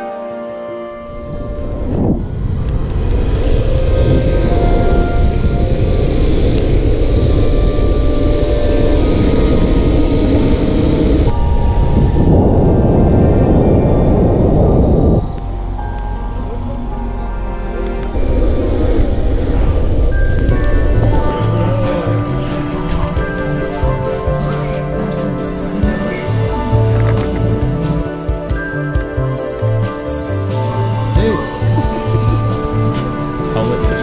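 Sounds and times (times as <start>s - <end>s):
background music: 0.0s - 34.0s.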